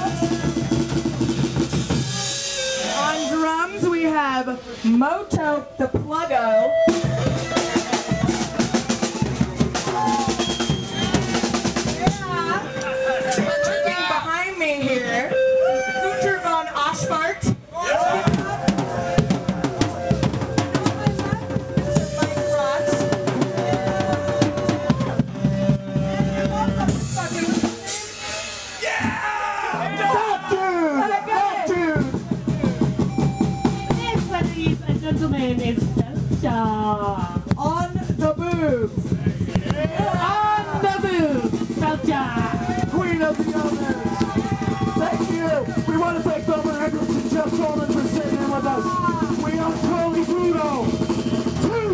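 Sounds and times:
people shouting: 0.0 - 3.7, 6.4 - 33.0, 39.1 - 51.9
held instrument note: 0.0 - 4.1, 5.6 - 28.7, 29.7 - 34.8
fast drum kit playing: 0.0 - 4.4, 5.0 - 14.7, 16.2 - 51.9.

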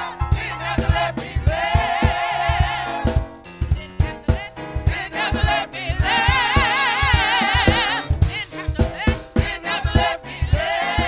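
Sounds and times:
choir singing with vibrato: 0.0 - 11.0
steady low beat: 0.0 - 11.0.

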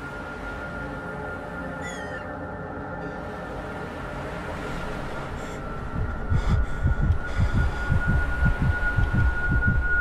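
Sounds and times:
heartbeat thumps: 6.0 - 9.8.

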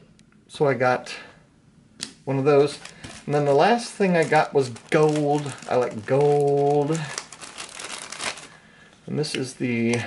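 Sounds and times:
plastic packaging crinkling: 2.4 - 8.8.

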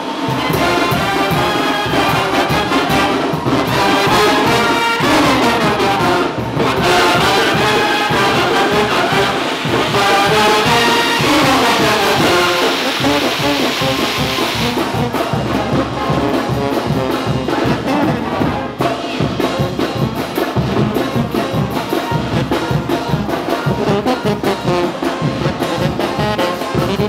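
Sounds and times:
firework fountain hissing: 0.0 - 17.4
brass band playing: 0.0 - 27.0.

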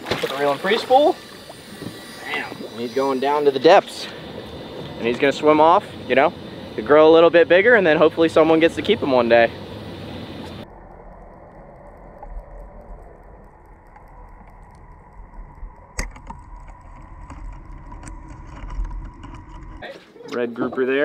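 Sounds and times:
open-air noise: 0.0 - 10.7
muffled underwater rumble: 0.0 - 19.8
sharp click: 10.4 - 19.4.

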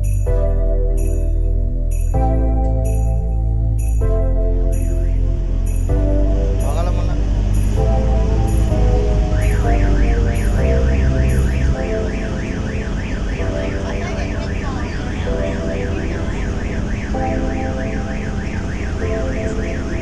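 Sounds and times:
background music: 0.0 - 20.0
warbling electronic alarm: 0.0 - 20.0
deep rumble: 1.5 - 12.2.

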